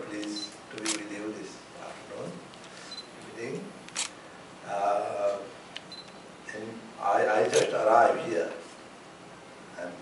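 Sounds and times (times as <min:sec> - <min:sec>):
sharp click: 0:03.9 - 0:04.2
person speaking: 0:06.5 - 0:08.7.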